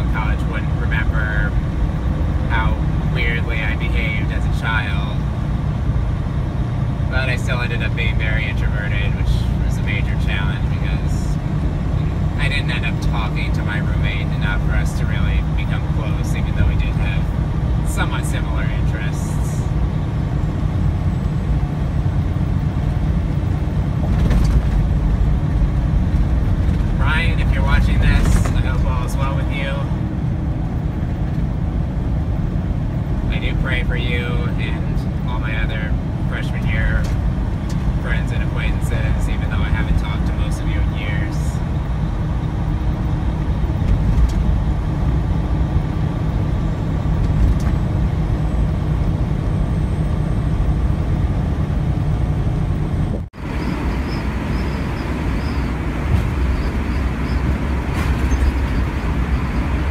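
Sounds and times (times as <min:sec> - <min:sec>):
truck engine and road rumble: 0:00.0 - 0:59.9.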